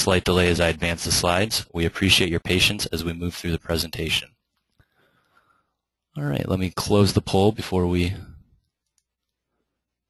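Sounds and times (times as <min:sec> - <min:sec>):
man speaking: 0:00.0 - 0:04.5, 0:06.2 - 0:08.6.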